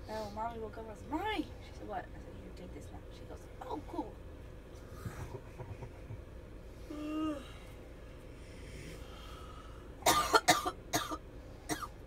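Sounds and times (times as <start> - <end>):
person coughing: 10.0 - 12.0.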